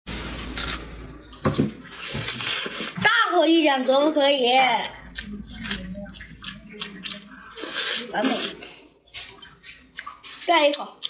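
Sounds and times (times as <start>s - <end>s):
wet eating sounds: 0.4s - 11.0s.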